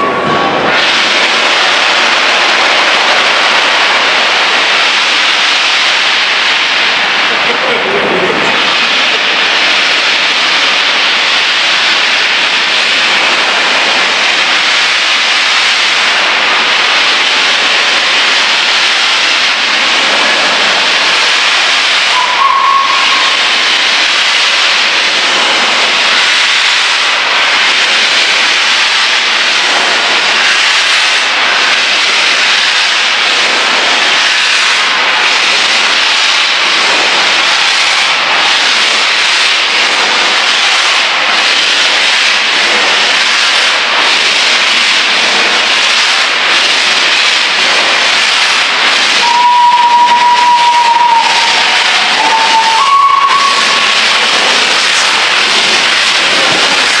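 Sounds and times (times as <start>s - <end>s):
steam locomotive venting steam: 0.0s - 57.0s.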